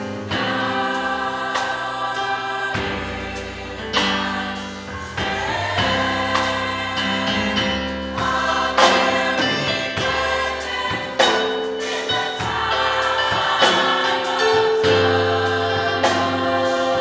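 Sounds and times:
women's choir singing: 0.0 - 17.0.

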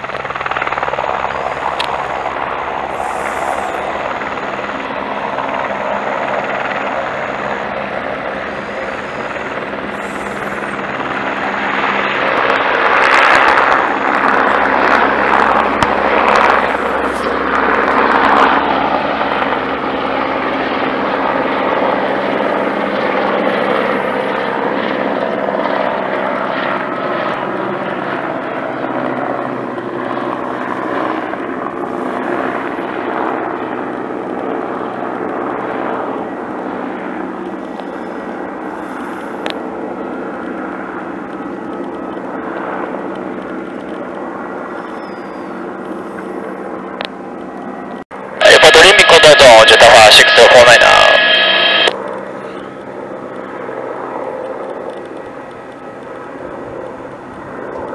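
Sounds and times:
helicopter engine and rotor: 0.0 - 57.9.

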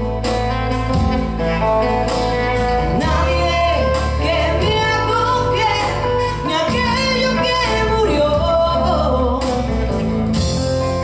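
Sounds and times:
electric bass: 0.0 - 11.0
woman singing: 2.9 - 10.0.

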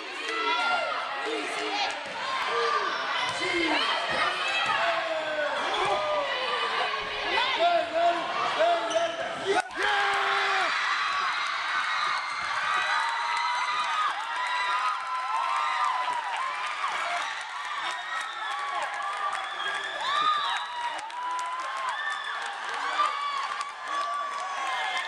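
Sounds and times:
spectators shouting and cheering: 0.0 - 25.0.

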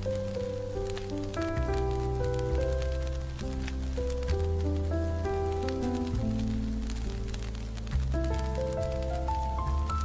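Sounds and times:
jazz piano: 0.0 - 10.0
low bass notes: 0.0 - 10.0.

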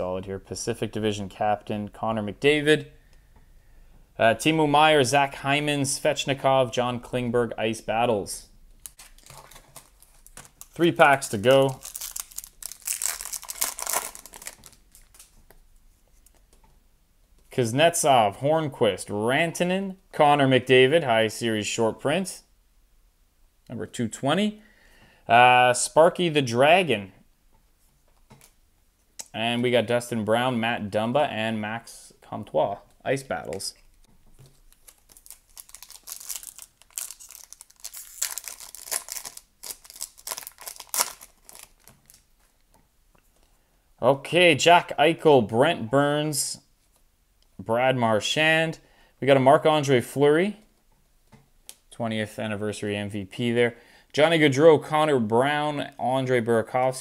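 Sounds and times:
foil wrapper crinkling: 8.8 - 15.4, 34.5 - 42.6.

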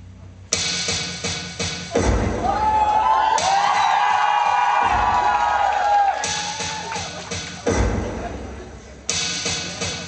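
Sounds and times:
low drum hit: 1.9 - 2.8, 7.6 - 8.8
crowd cheering and whooping: 2.3 - 7.7.

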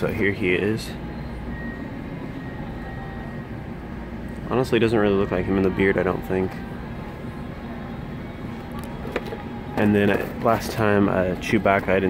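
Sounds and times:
store air handling rumble: 0.0 - 12.0.

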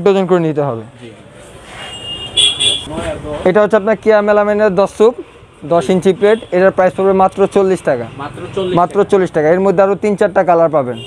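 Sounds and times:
market background noise: 0.0 - 11.0.

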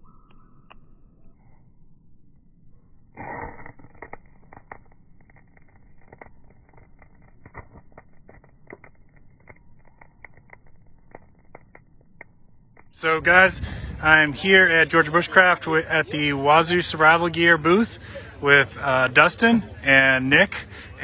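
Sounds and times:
faint crackles of smouldering fluff: 3.2 - 21.0.

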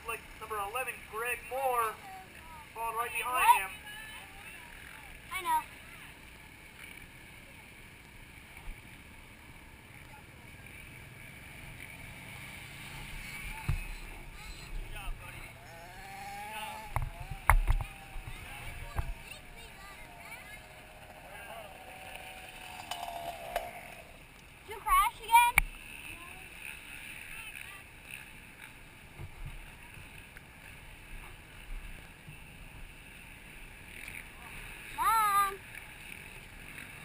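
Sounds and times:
dirt bike engines running: 0.0 - 37.0
faint voices: 8.8 - 28.6.

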